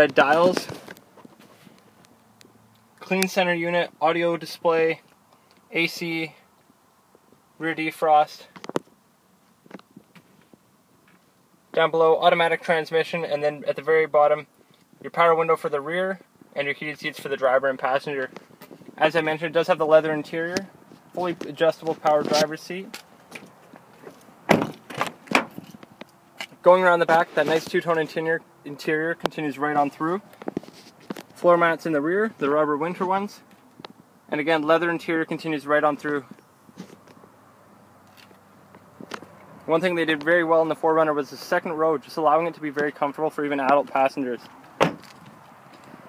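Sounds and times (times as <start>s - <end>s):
low steady vehicle hum: 0.0s - 46.0s
car door thunk: 24.5s - 25.7s, 44.8s - 45.2s.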